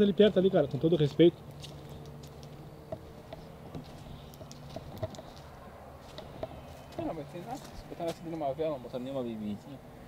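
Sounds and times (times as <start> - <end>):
footsteps on dirt: 1.4 - 8.4.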